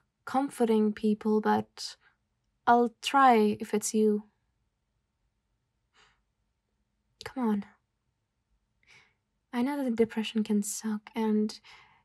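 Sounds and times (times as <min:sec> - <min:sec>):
woman breathing faintly: 0:11.6 - 0:12.0.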